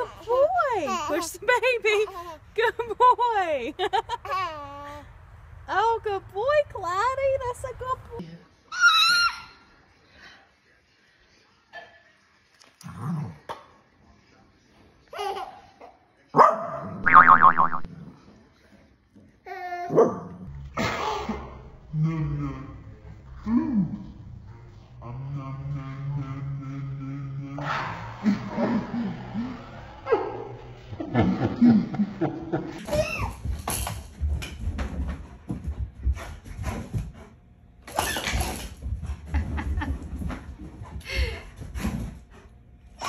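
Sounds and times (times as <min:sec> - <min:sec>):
falling sound: 0:17.0 - 0:17.9
low voice sounds: 0:17.0 - 0:17.9.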